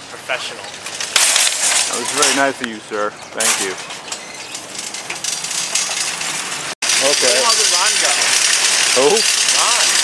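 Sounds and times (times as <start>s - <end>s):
engine running: 4.6s - 10.0s.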